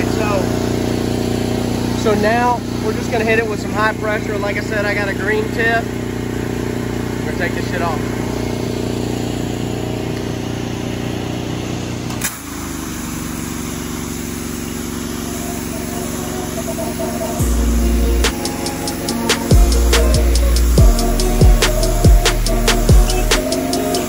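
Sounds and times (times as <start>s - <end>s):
hip-hop beat with heavy bass: 0.0s - 0.7s, 15.0s - 24.0s
gasoline engine running: 0.0s - 24.0s
high-pressure water spraying on brick: 12.2s - 17.4s.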